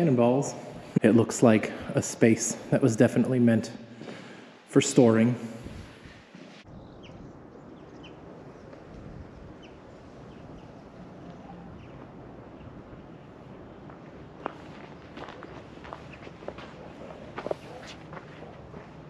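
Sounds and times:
open-air background noise: 0.0s - 19.0s
footsteps: 5.6s - 6.7s, 13.9s - 19.0s.

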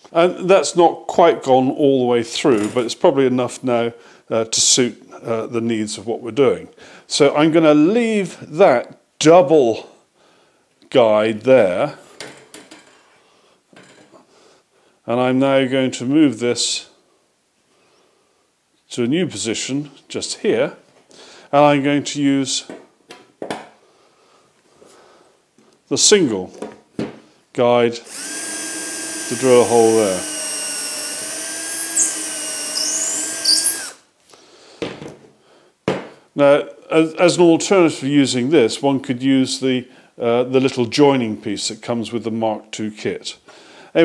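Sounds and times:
cordless drill drilling into wood: 28.1s - 34.0s.

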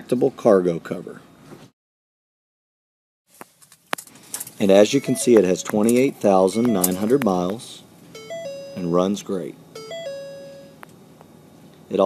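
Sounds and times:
electronic chime: 4.8s - 5.6s, 6.4s - 7.2s, 8.1s - 9.1s, 9.8s - 10.8s.

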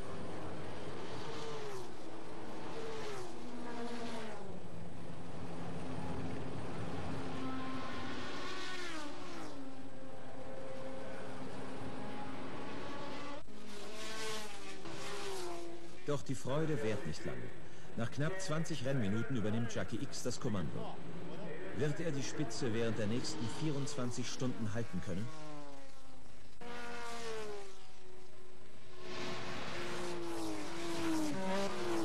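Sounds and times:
racing car engines passing by: 0.0s - 32.0s.

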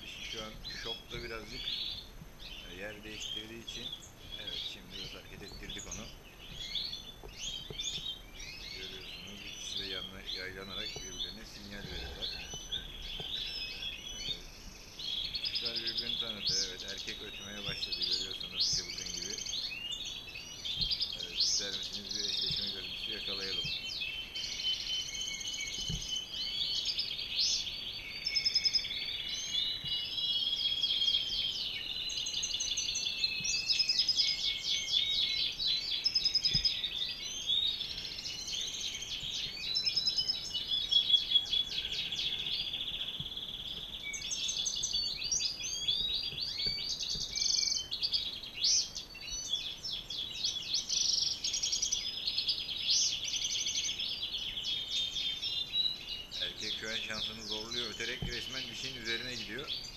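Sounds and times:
goldfinch twittering song: 0.0s - 59.9s.

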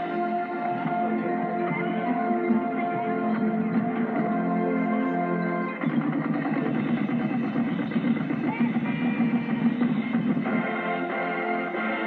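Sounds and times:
muffled marching band: 0.0s - 12.0s.

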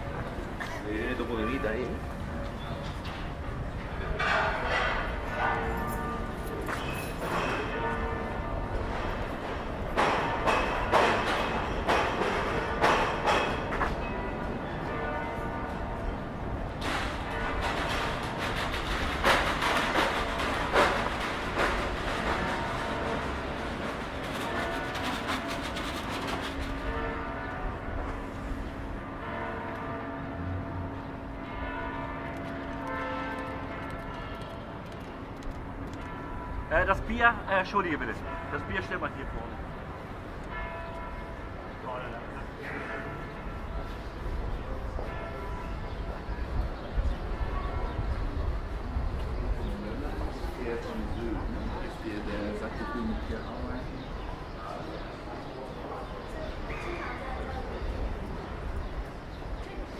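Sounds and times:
outdoor clatter: 0.1s - 8.2s, 8.8s - 15.8s, 16.7s - 41.8s
bells ringing: 4.1s - 8.6s, 20.3s - 34.8s, 35.7s - 48.2s.

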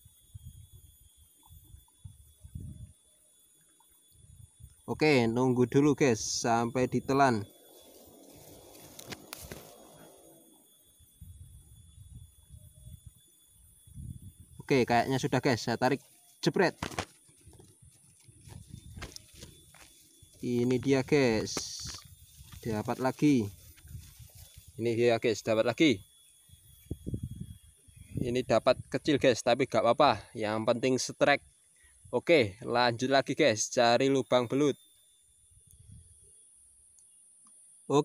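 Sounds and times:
handling thumps and rustles: 16.8s - 20.4s.

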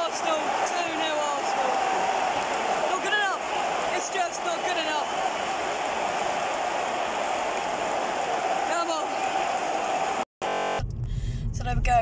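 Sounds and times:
stadium crowd din: 0.0s - 10.8s.

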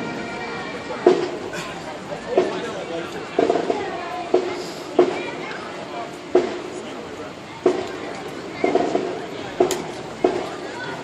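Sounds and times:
crowd chatter: 0.0s - 11.0s
people talking close by: 0.0s - 11.0s.

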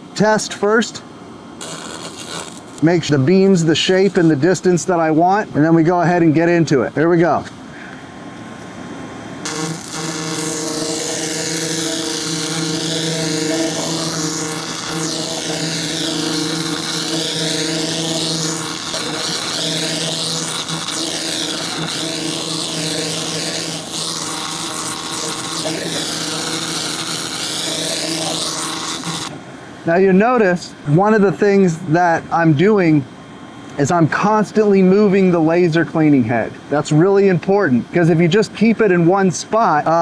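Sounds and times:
laser cleaner buzzing hum: 1.6s - 5.4s, 9.4s - 29.4s.

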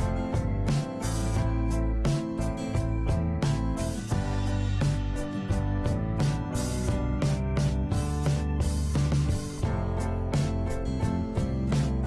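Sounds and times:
instrumental music with beat: 0.0s - 12.0s.

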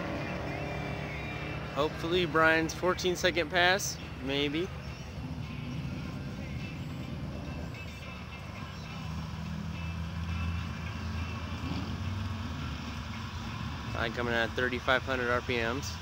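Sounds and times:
distant car engine running: 4.0s - 16.0s.

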